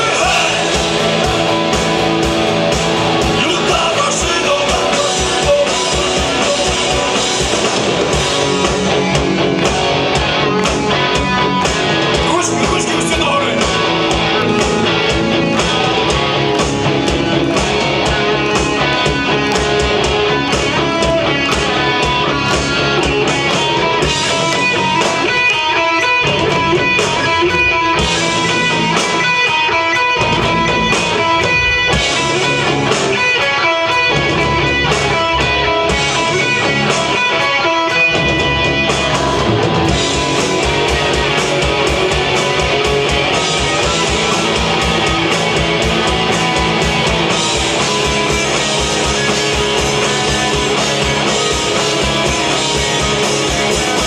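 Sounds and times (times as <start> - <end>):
bass guitar: 0.0 - 54.0
drums on a steady beat: 0.0 - 54.0
electric guitars: 0.0 - 54.0.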